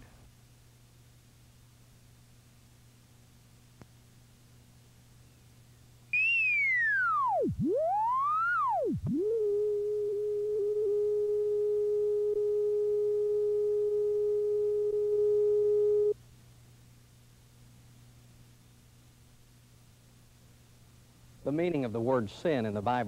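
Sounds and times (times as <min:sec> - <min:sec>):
steady test tone: 0:06.2 - 0:16.2.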